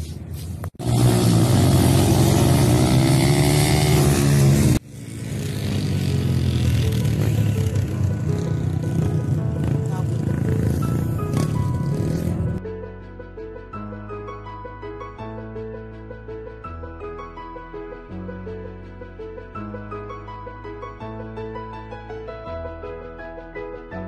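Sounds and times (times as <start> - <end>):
vehicle engine revving: 0.8 - 12.6
music: 3.7 - 24.0.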